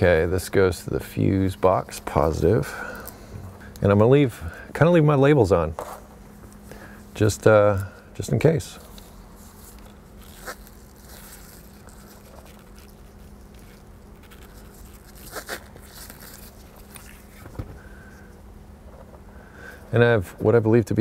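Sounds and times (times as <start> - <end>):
faint handling sounds: 0.0 - 20.1
steady low hum: 0.0 - 21.0.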